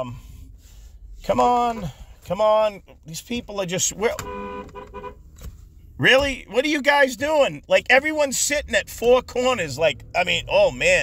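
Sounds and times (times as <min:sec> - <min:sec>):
dual-tone car horn: 0:04.1 - 0:05.3.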